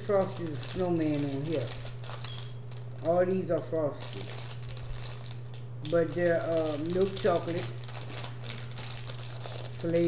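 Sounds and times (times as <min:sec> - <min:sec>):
low steady hum: 0:00.0 - 0:10.0
plastic candy bag crinkling: 0:00.0 - 0:10.0.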